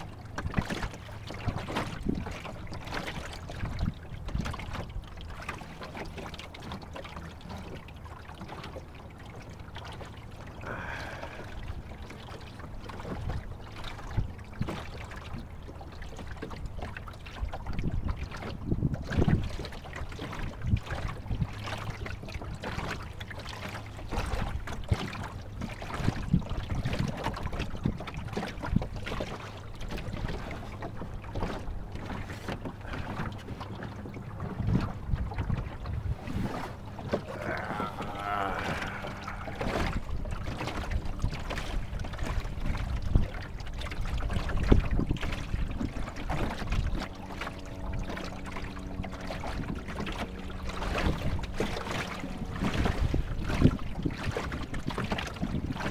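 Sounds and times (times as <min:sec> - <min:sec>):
wind rumbling on microphone: 0:00.0 - 0:05.4, 0:16.7 - 0:22.9, 0:23.9 - 0:55.9
water slapping against boat hull: 0:00.0 - 0:55.9.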